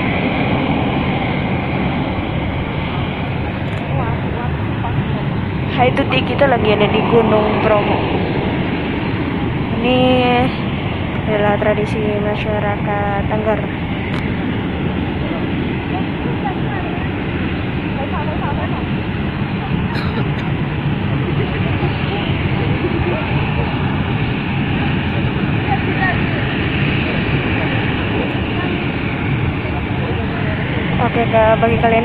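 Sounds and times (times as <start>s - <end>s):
loud steady rushing noise: 0.0s - 32.0s
faint voices of people: 15.1s - 32.0s.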